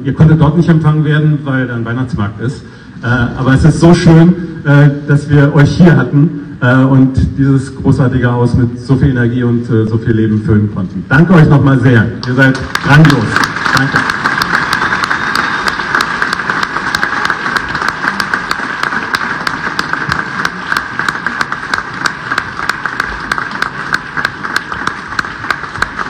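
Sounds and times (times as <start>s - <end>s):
group applauding: 12.2s - 26.0s.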